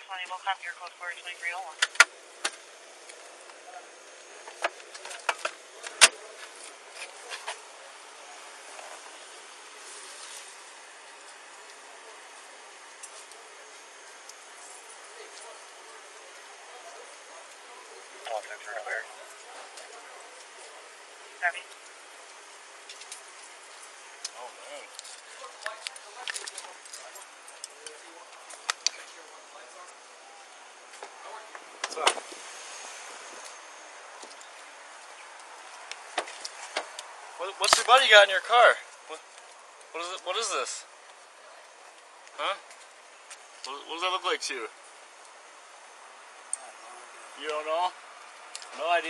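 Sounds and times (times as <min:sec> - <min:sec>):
steady hiss: 0:00.0 - 0:49.0.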